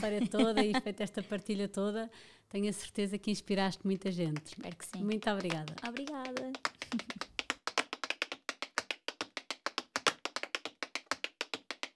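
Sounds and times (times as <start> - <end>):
tap-dance shoes tapping: 4.3 - 11.9.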